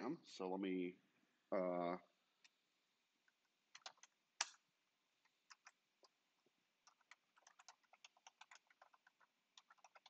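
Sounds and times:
keyboard typing: 3.3s - 4.6s, 5.2s - 6.2s, 6.8s - 10.0s.

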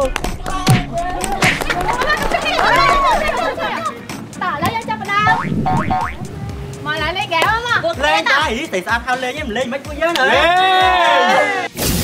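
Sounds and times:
background music: 0.0s - 11.7s
young people talking: 0.9s - 5.5s, 6.2s - 9.9s.

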